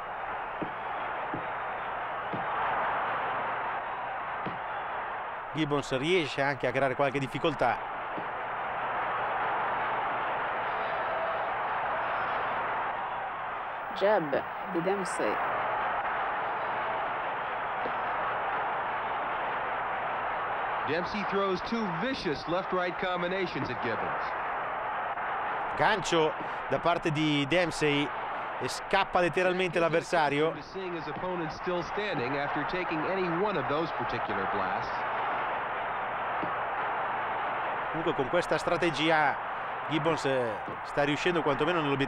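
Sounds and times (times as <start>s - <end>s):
man talking: 5.5s - 7.8s, 20.9s - 24.2s, 25.8s - 34.9s, 38.0s - 42.0s.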